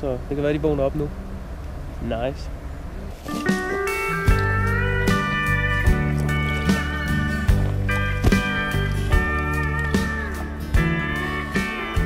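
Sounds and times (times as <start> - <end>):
slide guitar melody: 3.0 - 12.0
low beat thumps: 3.5 - 11.8.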